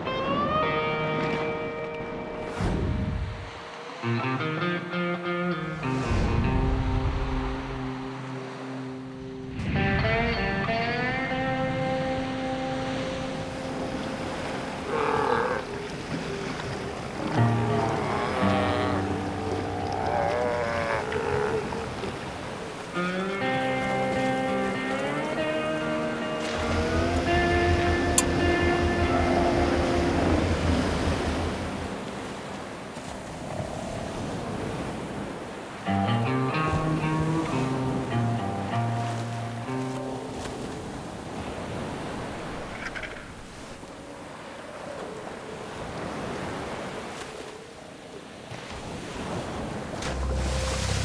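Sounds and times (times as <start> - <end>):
background music: 0.0 - 15.0, 17.3 - 20.5, 23.0 - 32.8, 35.8 - 41.0, 50.0 - 51.0
surf: 0.0 - 51.0
sea lions calling: 12.8 - 40.5.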